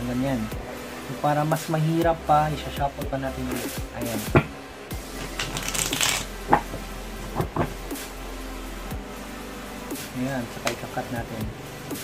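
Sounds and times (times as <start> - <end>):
playing cards shuffling: 5.1 - 6.8
cards tapping: 5.3 - 6.8.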